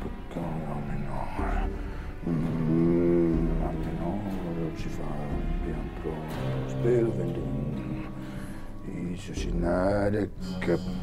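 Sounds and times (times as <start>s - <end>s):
man holding low sung note: 0.0s - 11.0s.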